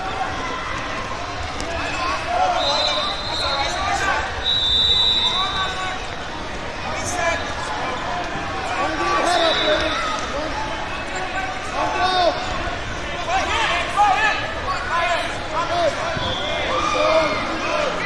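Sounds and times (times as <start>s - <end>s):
hubbub of voices: 0.0s - 18.0s.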